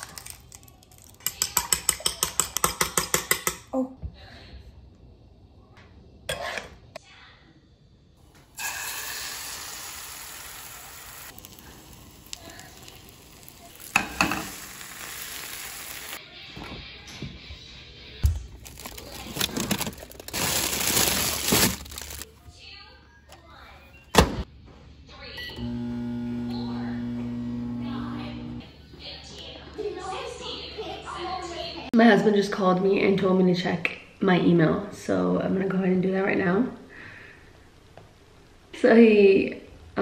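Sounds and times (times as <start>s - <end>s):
utensils and dishes clattering: 0.0s - 3.7s, 18.6s - 22.2s
food sizzling in a frying pan: 8.6s - 16.2s
low humming tone: 25.4s - 28.6s.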